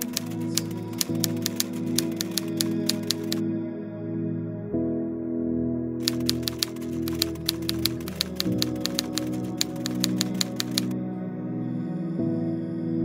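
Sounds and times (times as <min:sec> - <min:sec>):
typewriter key strikes: 0:00.0 - 0:03.4, 0:06.0 - 0:10.9
soft ambient music: 0:00.0 - 0:13.0.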